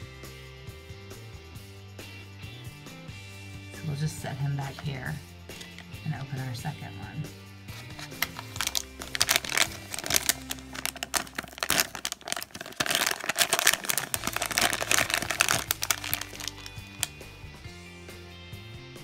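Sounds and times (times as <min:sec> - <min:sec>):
plastic packet crinkling: 0:05.6 - 0:05.9, 0:07.8 - 0:17.2.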